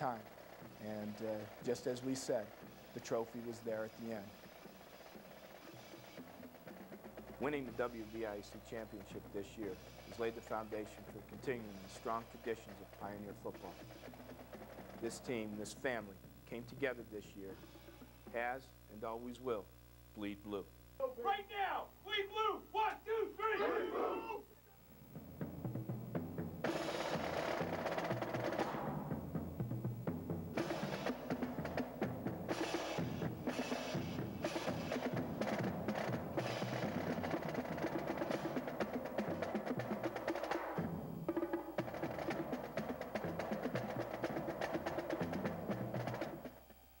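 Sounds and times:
percussion-driven drum music: 0.0 - 18.6, 21.0 - 46.8.

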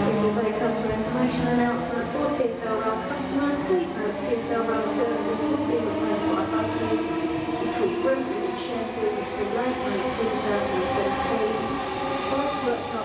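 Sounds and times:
electric train passing: 0.0 - 13.0.

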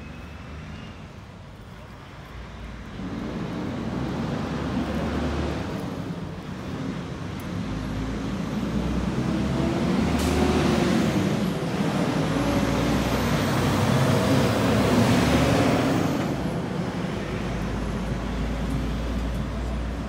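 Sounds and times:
vehicle driving past: 2.6 - 20.0.

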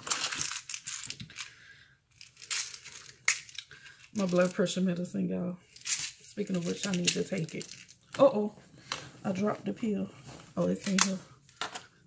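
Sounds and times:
rummaging in handbag: 5.7 - 9.5.

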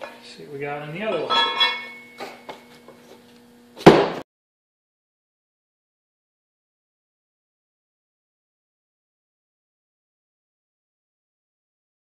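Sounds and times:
faint steady hum: 0.0 - 3.8.

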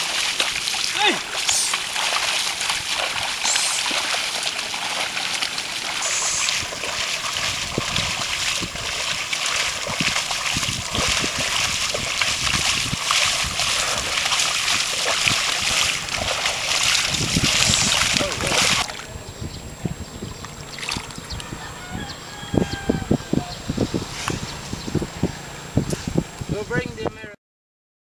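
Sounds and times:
buffalo and plow splashing through mud: 0.0 - 19.1.

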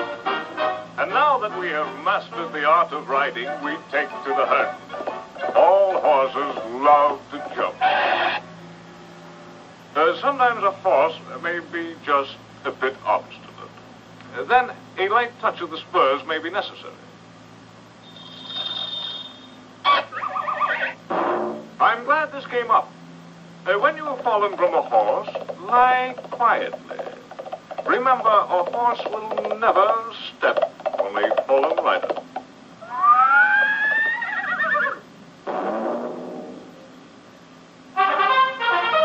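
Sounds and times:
warbling cartoon yell: 7.8 - 8.4, 19.8 - 21.0, 32.8 - 35.0
high ringing tone: 18.0 - 21.0
short noisy crash: 21.1 - 21.7, 35.4 - 36.8.

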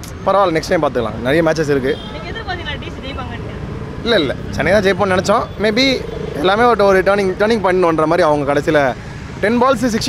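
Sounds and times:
street traffic: 0.0 - 10.0
man talking: 0.1 - 2.1, 4.0 - 10.0.

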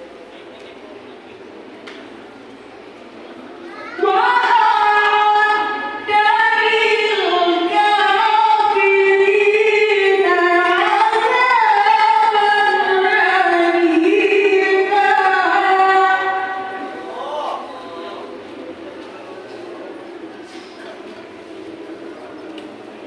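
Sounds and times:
woman reciting melodically: 3.9 - 17.3.

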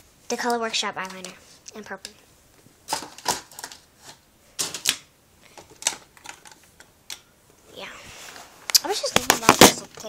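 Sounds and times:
objects clicking and knocking: 2.9 - 7.3.

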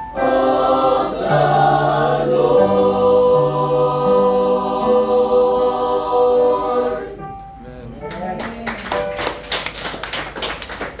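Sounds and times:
congregation clapping: 8.1 - 11.0.

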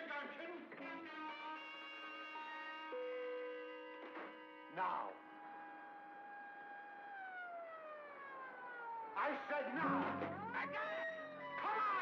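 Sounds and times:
siren winding down: 5.4 - 12.0.

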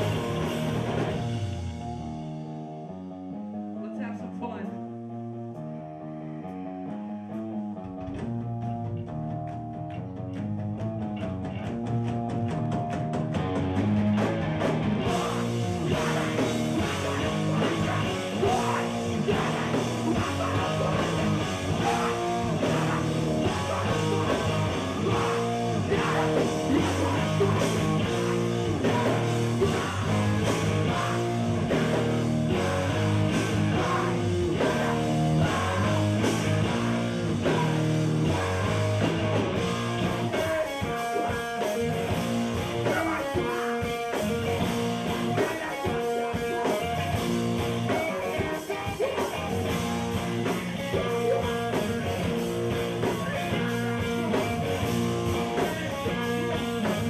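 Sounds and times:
punk band playing: 0.0 - 5.8, 6.4 - 57.0
distorted electric guitar chords: 0.0 - 57.0.

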